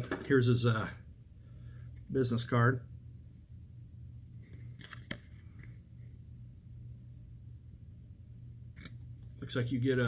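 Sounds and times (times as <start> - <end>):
paper card clicks and rustles: 4.4 - 5.8.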